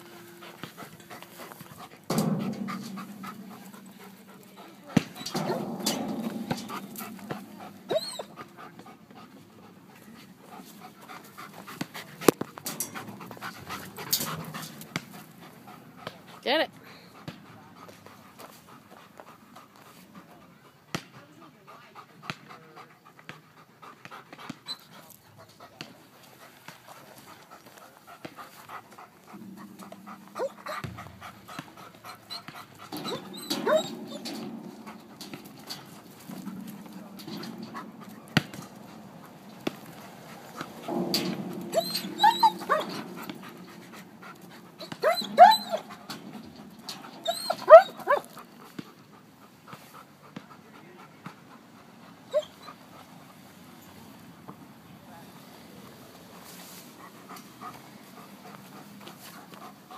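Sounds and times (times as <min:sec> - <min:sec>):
dog panting: 0:00.0 - 0:54.5, 0:56.3 - 0:59.9
dog whining: 0:07.9 - 0:08.4, 0:30.4 - 0:30.9, 0:32.1 - 0:34.3, 0:41.7 - 0:43.3, 0:44.8 - 0:46.0, 0:47.2 - 0:48.3, 0:52.3 - 0:52.8.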